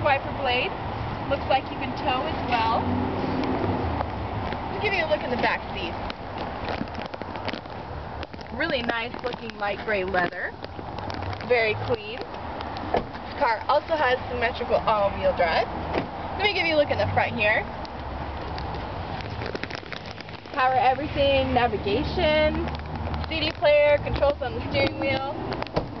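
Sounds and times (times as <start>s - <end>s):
rain on umbrella and car: 1.0s - 15.6s, 16.2s - 26.0s.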